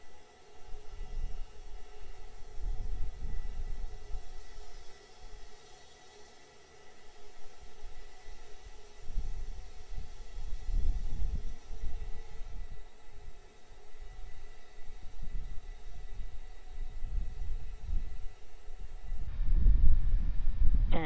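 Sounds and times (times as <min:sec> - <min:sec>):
faint steady hiss: 0:00.0 - 0:21.0
wind buffeting microphone: 0:19.2 - 0:21.0.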